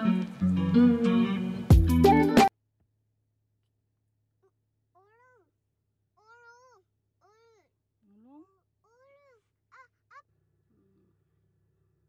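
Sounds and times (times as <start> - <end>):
small child calling: 5.0 - 5.5, 6.2 - 7.7, 8.3 - 10.3.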